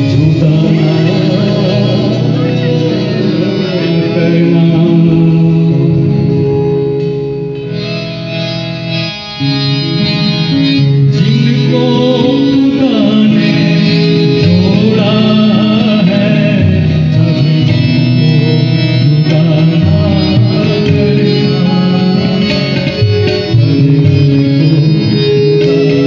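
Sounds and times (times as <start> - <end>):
man singing: 0.0 - 7.0, 9.8 - 26.0
harmonium chords: 0.0 - 26.0.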